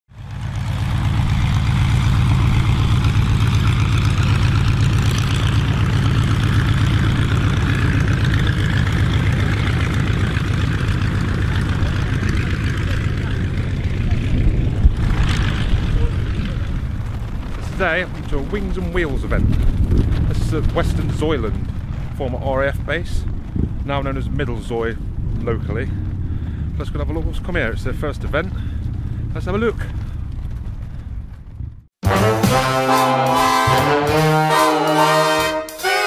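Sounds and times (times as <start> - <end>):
biplane engine and propeller: 0.1 - 36.0.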